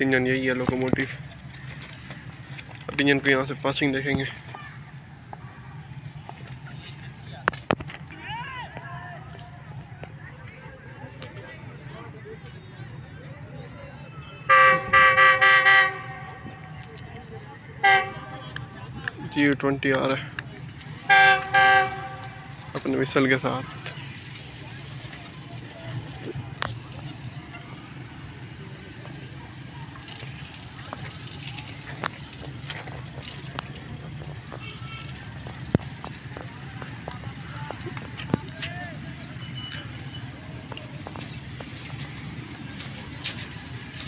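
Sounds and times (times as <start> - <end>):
low engine rumble: 0.0 - 44.0
locomotive horn toots: 14.3 - 16.8, 17.8 - 18.8, 21.0 - 22.7, 34.5 - 35.4.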